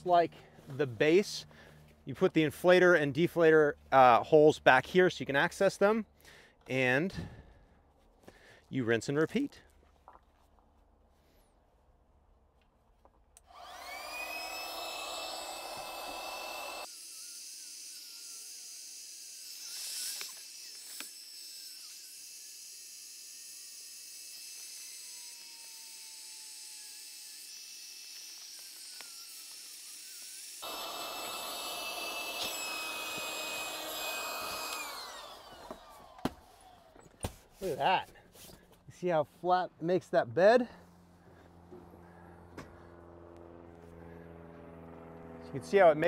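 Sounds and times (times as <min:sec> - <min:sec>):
electric air pump whining: 0:13.4 - 0:17.3, 0:27.3 - 0:37.2.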